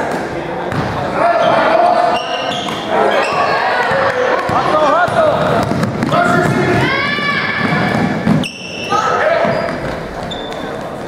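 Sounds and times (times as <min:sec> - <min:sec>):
basketball bouncing on wooden floor: 0:03.3 - 0:06.8, 0:07.6 - 0:08.5
people calling out: 0:06.1 - 0:09.8.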